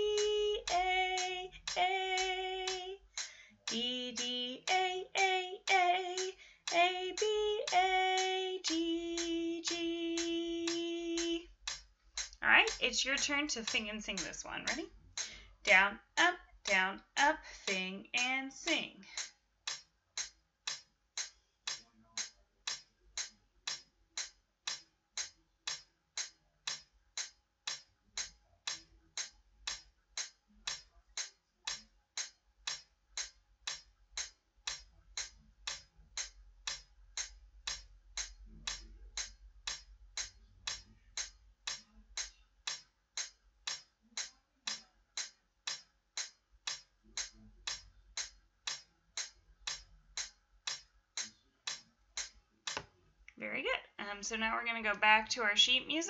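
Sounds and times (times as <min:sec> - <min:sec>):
metronome clicking: 0:00.0 - 0:52.9, 0:54.3 - 0:56.0.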